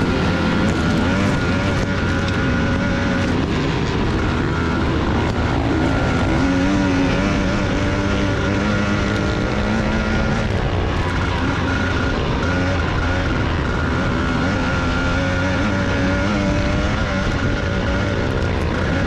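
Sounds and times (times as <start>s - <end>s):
motors droning: 0.0s - 19.0s
whining tones: 0.0s - 19.0s.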